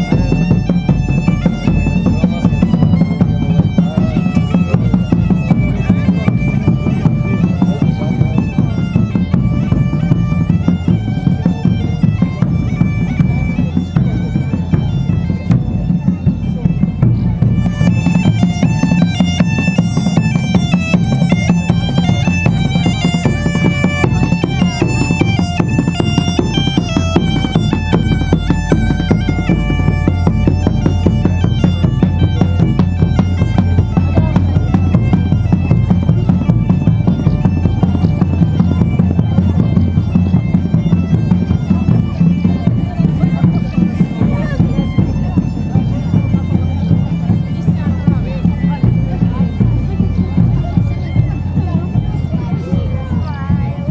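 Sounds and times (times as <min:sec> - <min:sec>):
bagpipe melody with drone: 0:00.0 - 0:53.9
drum beating: 0:00.0 - 0:53.9.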